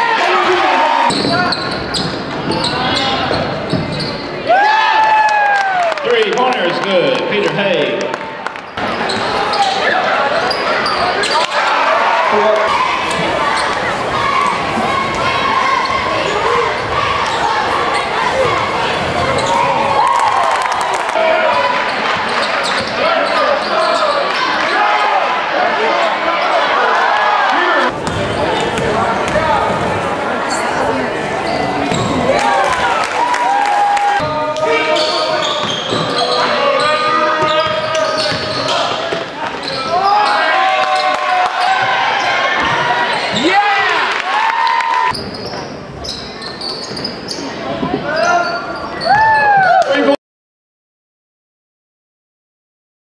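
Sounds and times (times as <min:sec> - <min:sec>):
sneaker squeaks on hardwood: 0:01.1 - 0:04.4, 0:08.7 - 0:09.8, 0:22.2 - 0:24.2, 0:31.4 - 0:32.2, 0:34.8 - 0:40.5, 0:45.1 - 0:49.4
spectators talking and calling out: 0:06.1 - 0:50.2
basketball bouncing: 0:27.9 - 0:29.8.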